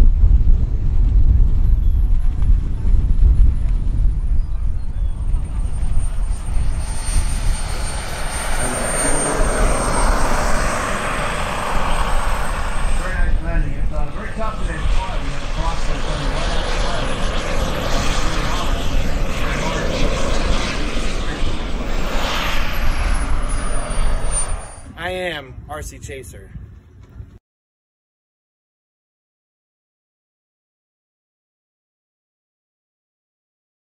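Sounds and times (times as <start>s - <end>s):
wind on microphone: 0.0s - 27.4s
jet turbine whine: 0.1s - 27.0s.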